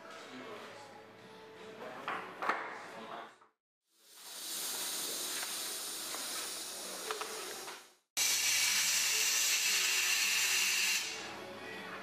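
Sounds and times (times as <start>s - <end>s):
compressed air hissing through hose: 4.0s - 11.2s.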